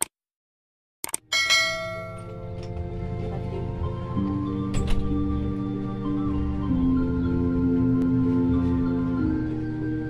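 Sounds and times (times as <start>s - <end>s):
bright bell chime: 1.3s - 2.4s.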